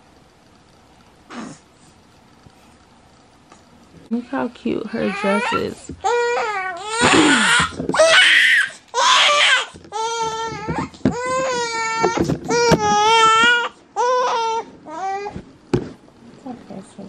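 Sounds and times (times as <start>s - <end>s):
baby crying: 5.0s - 15.4s.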